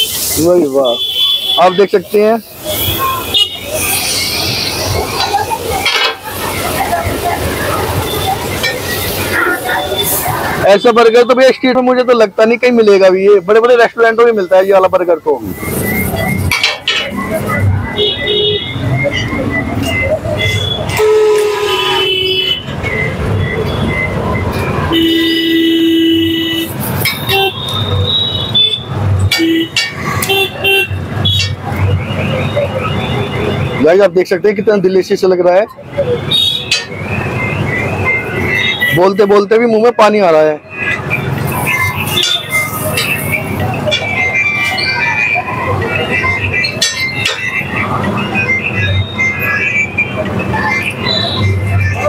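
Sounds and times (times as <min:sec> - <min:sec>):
traffic din: 0:00.0 - 0:52.0
vehicle horn blasts: 0:20.5 - 0:22.7, 0:24.9 - 0:26.7.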